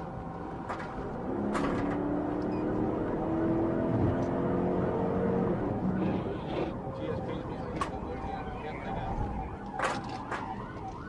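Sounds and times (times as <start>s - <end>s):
car engine accelerating: 1.2s - 6.7s.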